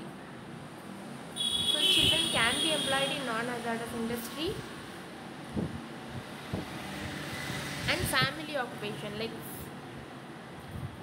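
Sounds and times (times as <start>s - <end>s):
woman speaking: 1.8s - 4.6s, 7.9s - 9.7s.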